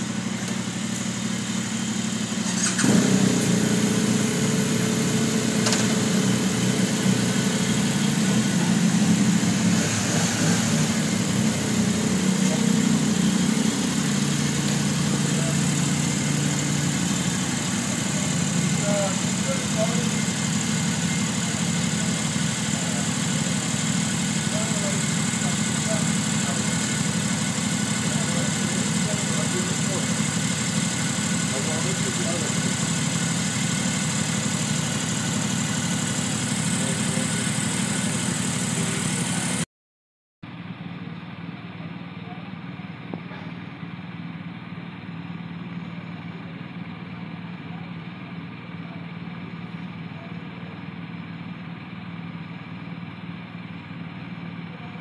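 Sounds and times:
motorcycle engine starting and idling: 0.0 - 39.6, 40.6 - 55.0.

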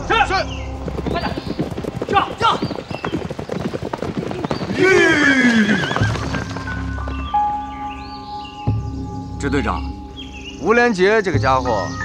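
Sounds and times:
horse hooves clip-clopping on dirt: 0.0 - 7.8
running footsteps: 0.0 - 8.8
horse whinnying: 4.3 - 7.0.

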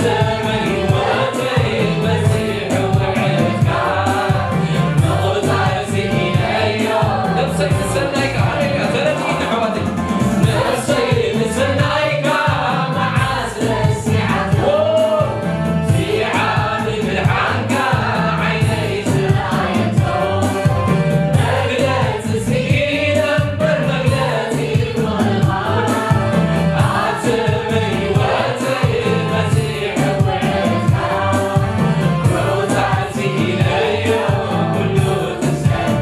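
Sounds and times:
small mixed choir singing: 0.0 - 9.8, 10.4 - 36.0
backing music with steady beat: 0.0 - 36.0.

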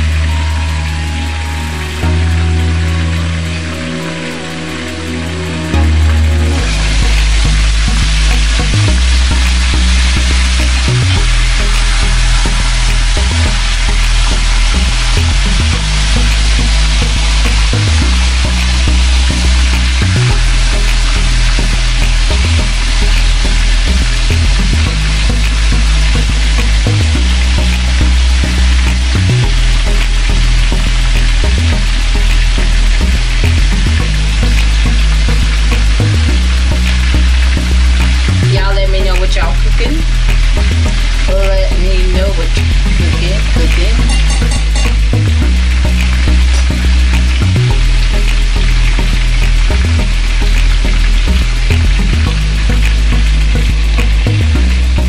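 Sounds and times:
bass line background music: 0.0 - 55.0
chicken sizzling in hot oil: 0.0 - 55.0.

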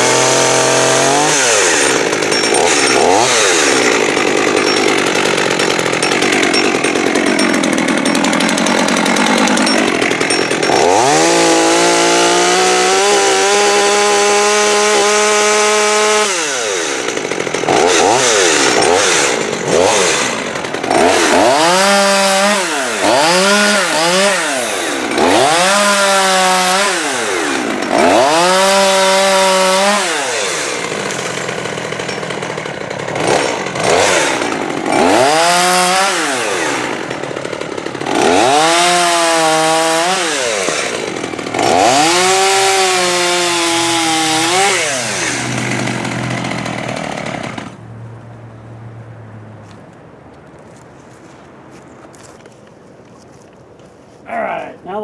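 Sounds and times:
chainsaw revving: 0.0 - 47.8.

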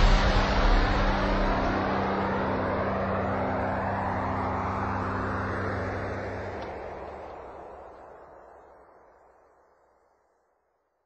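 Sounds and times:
steady low hum: 0.0 - 8.8
jet engine noise: 0.0 - 9.6.

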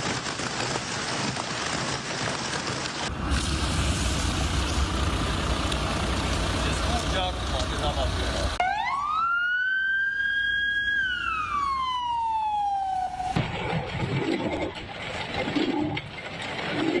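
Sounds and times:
wind: 0.0 - 17.0
siren wailing: 8.6 - 13.4.

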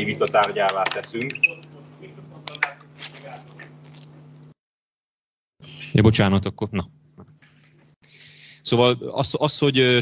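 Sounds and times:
steady low hum: 0.0 - 4.6.

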